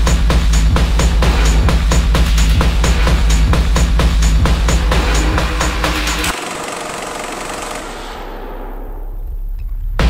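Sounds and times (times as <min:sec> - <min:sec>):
techno beat with kick drum: 0:00.0 - 0:06.3.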